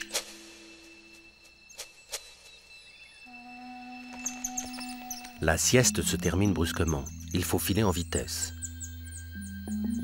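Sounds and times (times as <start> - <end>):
quiet music of long held notes: 0.0 - 10.0
high-pitched chirps: 1.6 - 10.0.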